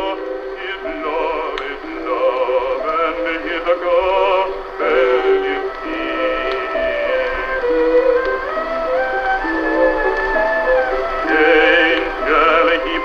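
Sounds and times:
old phonograph recording of singing: 0.0 - 13.0
orchestral accompaniment: 0.0 - 13.0.

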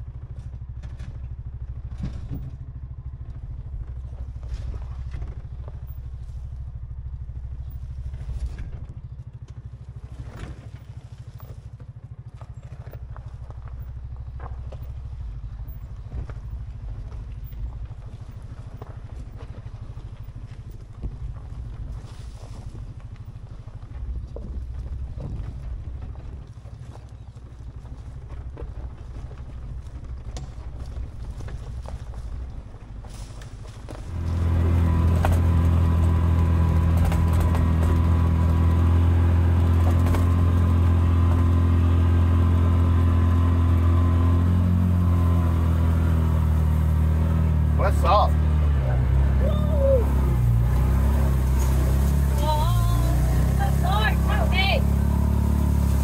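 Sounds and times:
utility vehicle engine running: 0.0 - 56.0
knocks from the trail: 1.9 - 2.7, 27.7 - 41.8.

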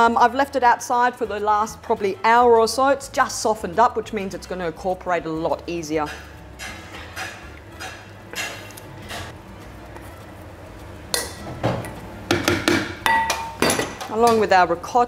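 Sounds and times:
spatula scraping: 5.5 - 12.1
metal bowls clinking on steel: 11.1 - 12.0, 13.0 - 14.5.

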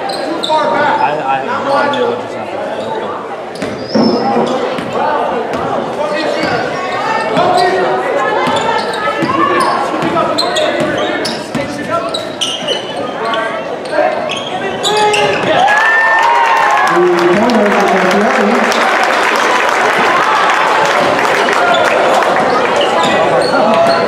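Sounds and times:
indistinct chatter echoing: 0.0 - 24.0.

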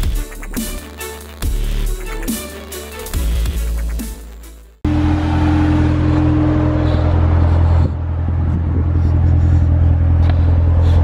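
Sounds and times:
car engine idling: 4.8 - 11.0.

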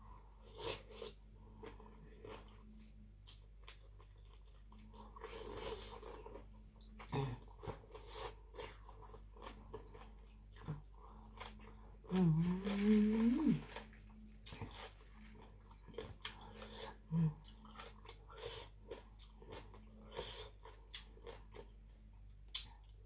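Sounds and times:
chewing and crunching: 0.2 - 23.0.

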